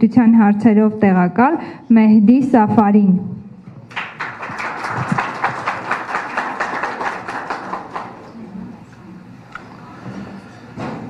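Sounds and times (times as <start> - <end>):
audience applauding: 3.9 - 8.4.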